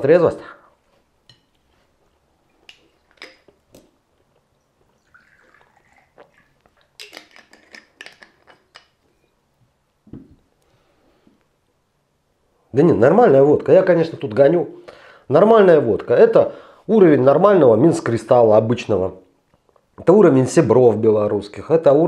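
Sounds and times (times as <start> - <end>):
man chewing food: 0.8 - 8.8
vodka poured into shot glass: 4.8 - 8.8.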